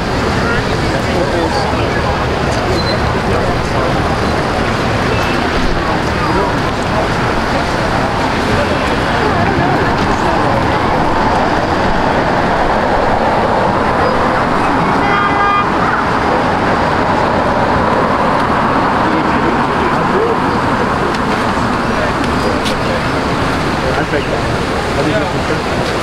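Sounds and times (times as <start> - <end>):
passers-by talking: 0.0 - 26.0
road traffic passing: 0.0 - 26.0.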